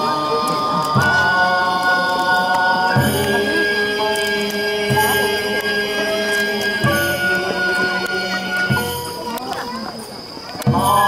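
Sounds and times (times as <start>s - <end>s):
long held notes: 0.0s - 9.6s.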